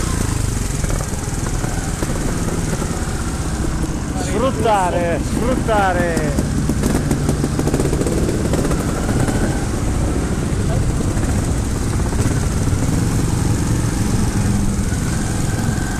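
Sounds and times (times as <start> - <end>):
motorcycle engines at low revs: 0.0 - 15.9.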